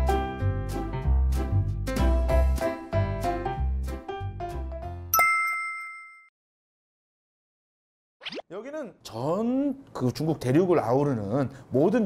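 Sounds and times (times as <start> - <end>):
background music: 0.0 - 5.2
bright ding sound effect: 5.1 - 6.3.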